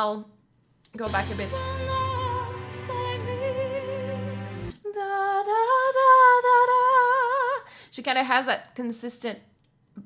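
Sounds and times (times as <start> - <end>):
symphonic metal music: 1.1 - 4.7.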